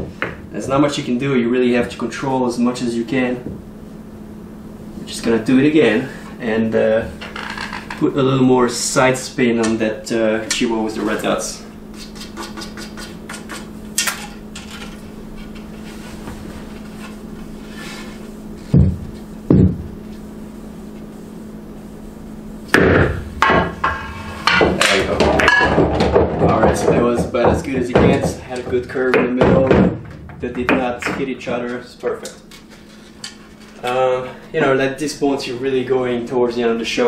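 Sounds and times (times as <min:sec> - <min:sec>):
dull knocks: 0:18.7 - 0:19.9, 0:24.5 - 0:31.3
pool balls clacking: 0:22.7 - 0:32.4.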